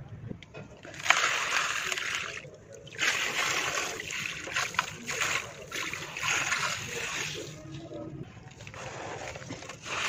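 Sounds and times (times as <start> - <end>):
soil pouring into muddy water: 0.9 - 7.6, 8.6 - 10.0.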